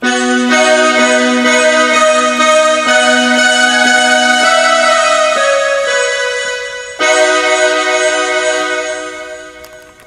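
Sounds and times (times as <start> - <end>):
digital keyboard chords: 0.0 - 10.0.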